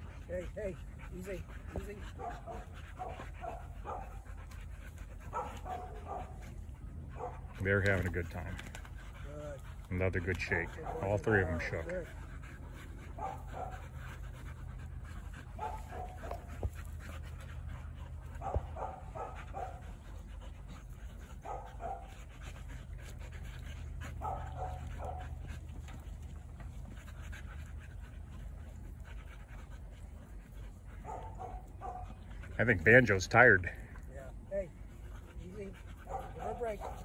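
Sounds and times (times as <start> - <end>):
dogs panting hard: 0.0 - 37.0.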